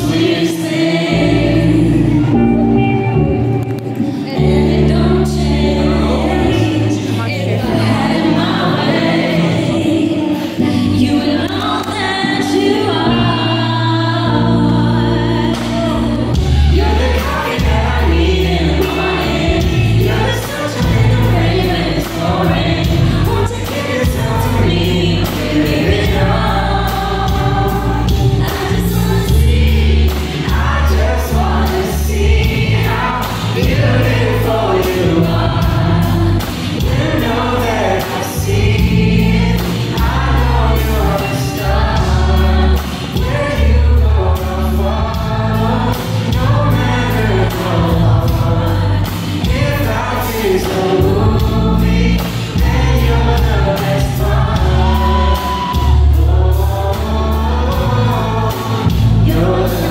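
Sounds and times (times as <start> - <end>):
man and woman singing: 0.0 - 3.1, 3.9 - 59.9
bass guitar: 0.0 - 59.9
drums: 0.0 - 59.9.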